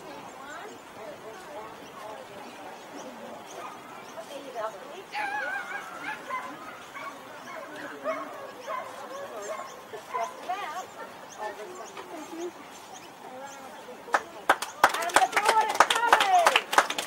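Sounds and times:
faint background talk: 0.0 - 17.0.

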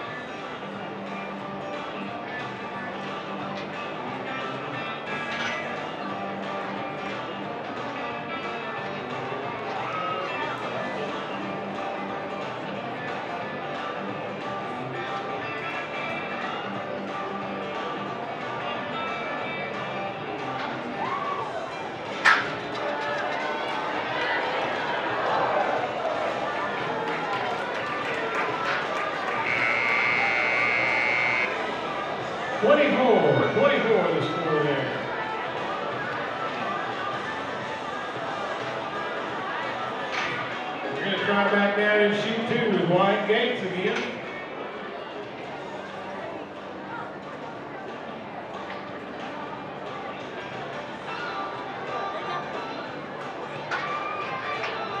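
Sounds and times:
crowd chatter: 0.0 - 55.0
arena music: 27.2 - 34.8
electronic buzzer: 29.4 - 31.5.

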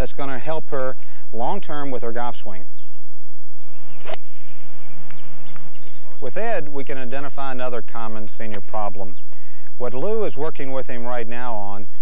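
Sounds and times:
low steady hum: 0.0 - 10.6
background hiss: 0.2 - 10.0
golf club striking ball: 3.6 - 6.0.

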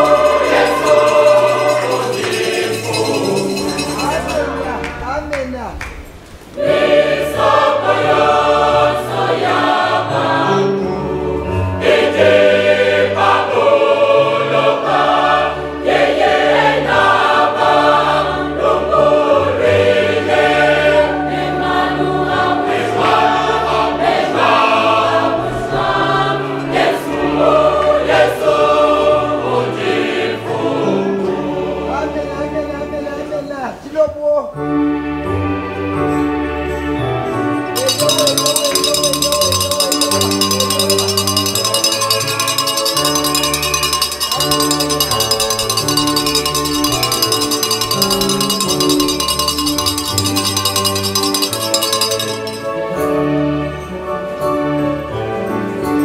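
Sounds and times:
choir singing a hymn: 0.0 - 4.9, 6.5 - 32.6.

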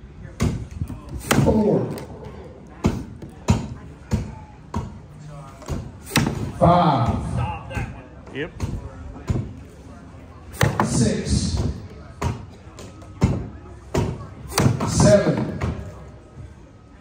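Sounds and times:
voices: 0.0 - 17.0
axe chopping wood: 1.2 - 2.0, 5.7 - 6.5, 13.9 - 15.6.

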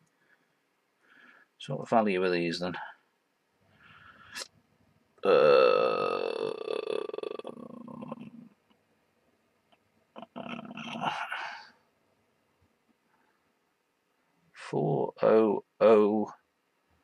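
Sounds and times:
man mumbling: 5.2 - 8.4, 10.2 - 11.7
man's croaky hesitation sound: 5.2 - 8.5, 10.2 - 11.7.

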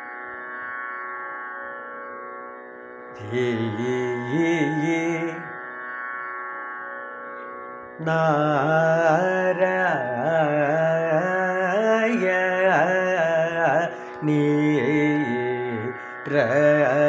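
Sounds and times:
man singing ornamented phrases: 3.2 - 5.7, 8.0 - 17.0.

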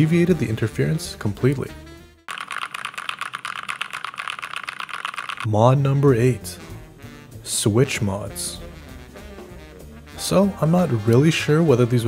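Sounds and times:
mechanical keyboard typing: 2.3 - 5.5.

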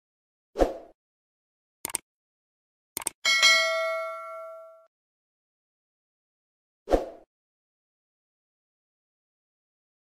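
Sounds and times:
mouse clicks: 1.8 - 2.0
notification bell ding: 3.3 - 4.9.

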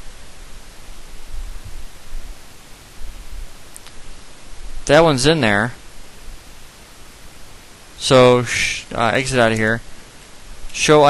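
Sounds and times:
microphone hiss: 0.0 - 11.0
faint click: 3.7 - 4.0.

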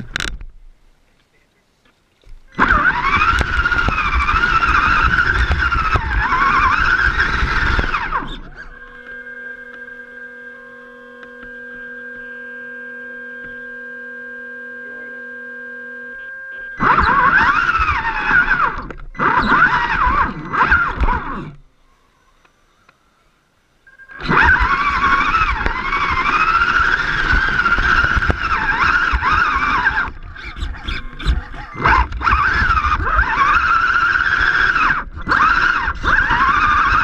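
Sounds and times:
electric motor and gearbox whine: 0.0 - 0.6, 2.2 - 23.0, 23.7 - 37.0
rough ground noise: 0.0 - 12.7, 16.2 - 37.0
steady electric hum: 0.0 - 37.0.

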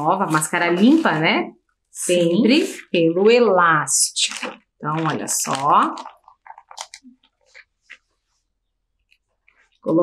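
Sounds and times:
plastic bag crinkling: 2.4 - 9.9.

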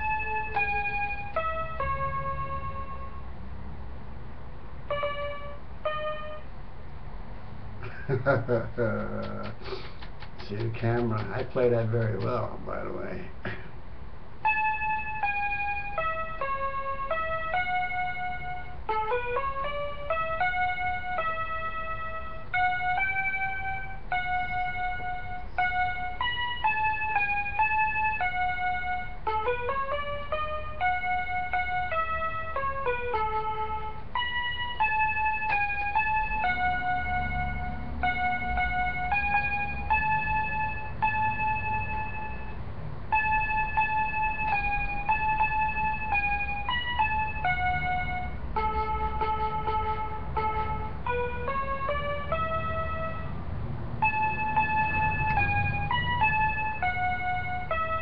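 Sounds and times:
electronic keyboard melody: 0.0 - 13.4, 14.2 - 58.0.

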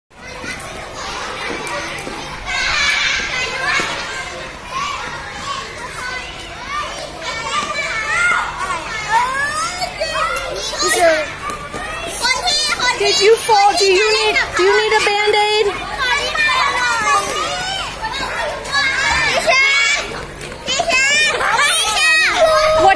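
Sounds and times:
children calling and chattering: 0.1 - 22.9.

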